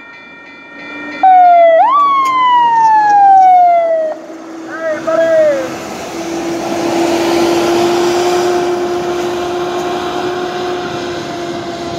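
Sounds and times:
loud wailing siren tone: 0.8s - 11.9s.

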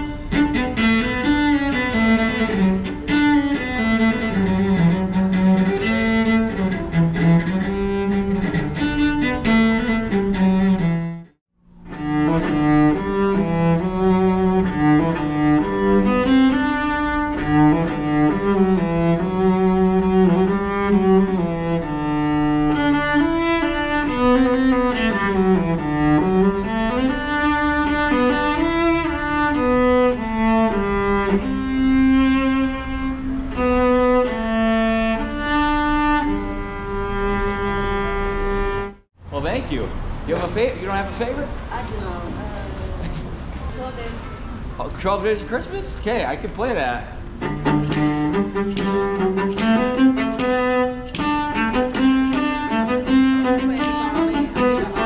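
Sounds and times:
bowed cello melody: 0.0s - 39.1s, 46.0s - 55.0s.

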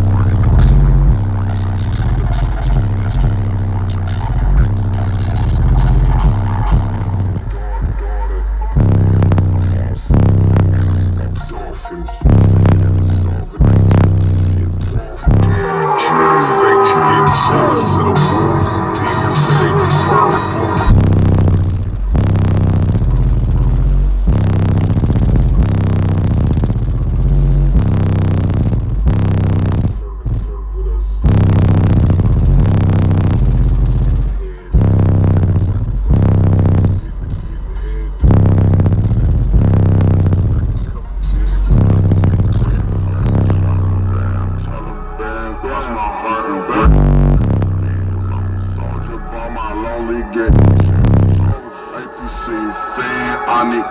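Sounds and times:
bass-heavy rap music in car: 0.0s - 53.9s.

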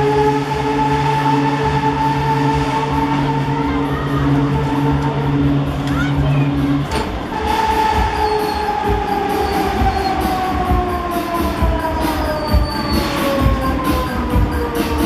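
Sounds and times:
fairground ride drive whining: 0.0s - 15.0s.

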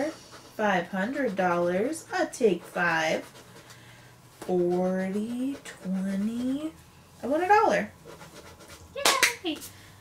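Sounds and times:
scratching scratch-off ticket: 0.0s - 3.7s, 4.4s - 6.8s.

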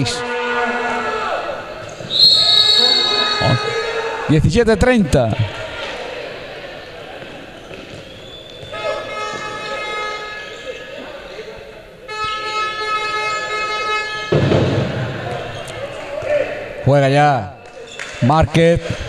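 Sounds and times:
long horn blasts: 12.1s - 14.5s.

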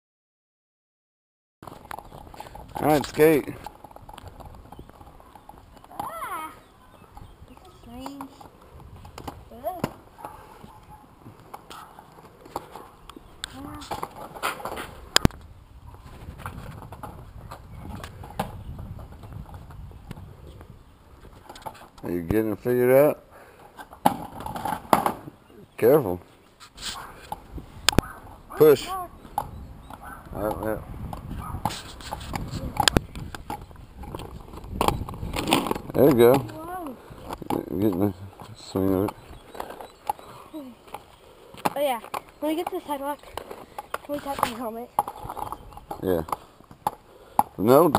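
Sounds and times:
skate wheels rattling over bricks: 1.6s - 10.2s, 11.2s - 15.3s, 15.9s - 20.5s, 23.6s - 25.4s, 31.0s - 47.9s.

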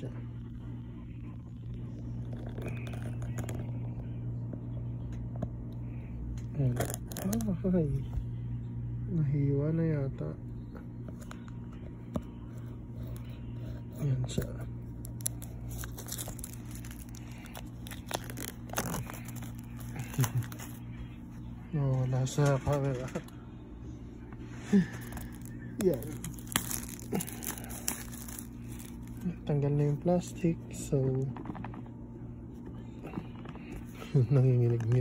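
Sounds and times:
steady low hum: 0.0s - 35.0s
scissors scraping plastic wrap: 6.5s - 7.6s, 15.0s - 20.8s, 25.0s - 29.2s.

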